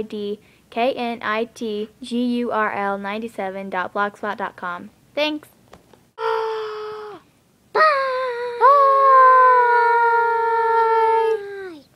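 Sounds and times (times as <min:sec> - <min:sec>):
girl holding long aaah: 0:06.2 - 0:11.9.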